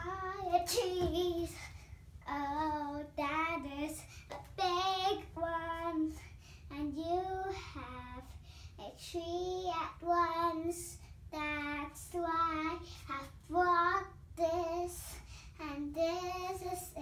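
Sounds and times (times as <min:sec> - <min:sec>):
girl singing: 0:00.0 - 0:17.0.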